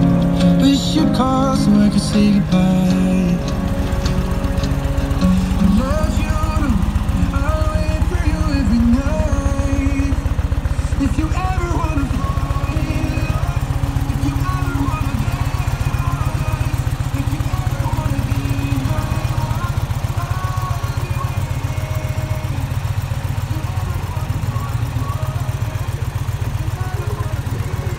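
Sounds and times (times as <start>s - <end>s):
motorcycle engine idling: 0.0s - 27.9s.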